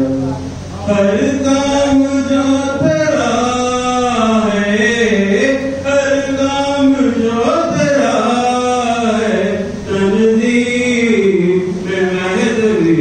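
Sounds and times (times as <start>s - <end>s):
man chanting through a microphone: 0.0s - 13.0s.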